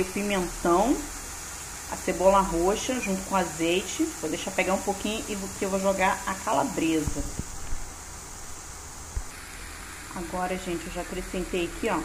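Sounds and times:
food sizzling in frying pan: 0.0 - 12.0.

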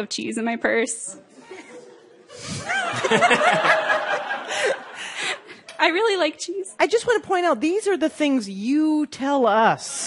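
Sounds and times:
audience laughing: 1.3 - 5.6.

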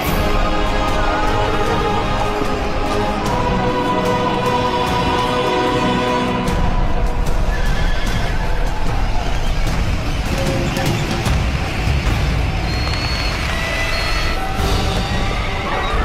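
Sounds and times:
film music: 0.0 - 16.0
horses neighing: 7.4 - 8.5.

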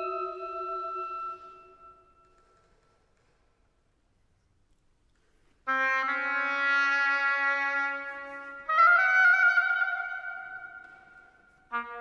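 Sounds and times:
string orchestra held notes: 0.0 - 1.6
oboe: 0.0 - 2.3.

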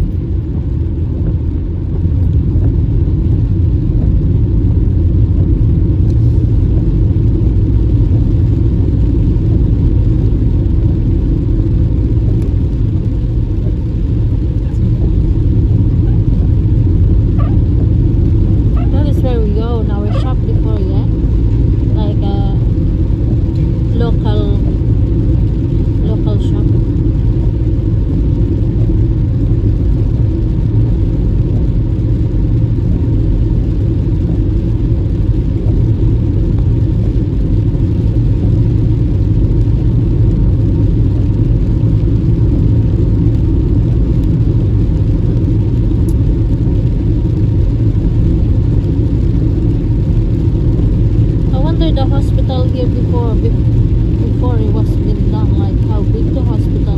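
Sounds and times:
car driving on wet road: 0.0 - 56.9.

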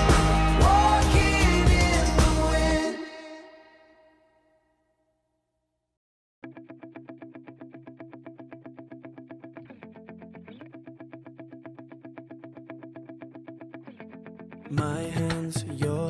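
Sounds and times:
electric guitar picking: 6.4 - 16.0.

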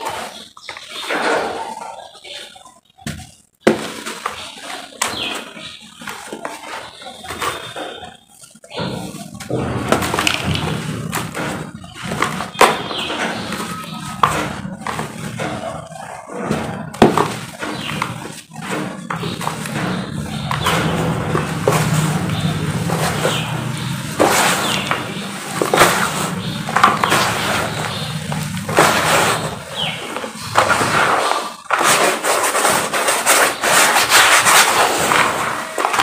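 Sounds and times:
gritty cement crunching: 3.6 - 36.0.

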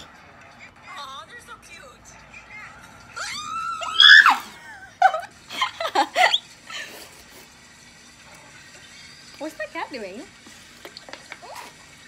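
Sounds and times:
girl squealing: 3.2 - 4.6.

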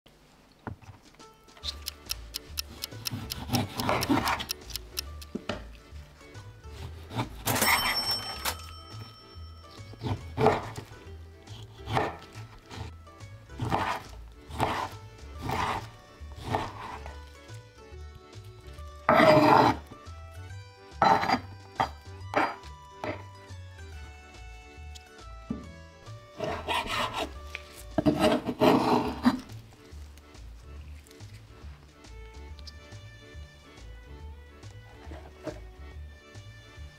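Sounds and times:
background music: 0.7 - 36.9
knife slicing fat: 1.7 - 5.3, 6.6 - 7.5, 9.9 - 17.6, 19.1 - 20.0, 26.3 - 29.6
fat scraped across wooden board: 13.6 - 17.2, 19.1 - 20.0, 26.4 - 29.6
knife knocking on cutting board: 25.5 - 25.8.

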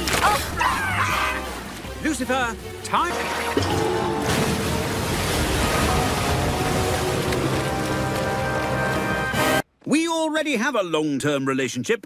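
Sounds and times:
background music: 0.0 - 9.7
rushing water roar: 3.0 - 9.4.

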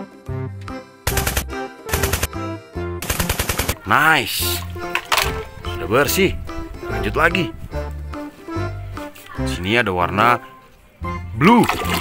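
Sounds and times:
automatic gunfire: 1.1 - 2.3, 3.0 - 3.9.

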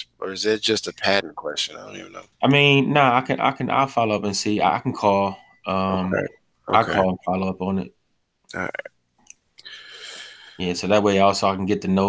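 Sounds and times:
person speaking over video call: 0.0 - 7.9, 8.5 - 8.9, 9.7 - 12.0
low steady room noise hiss: 0.0 - 12.0.

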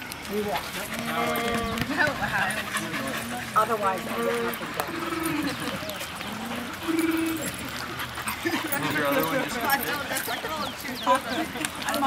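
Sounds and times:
people talking: 0.2 - 12.0.

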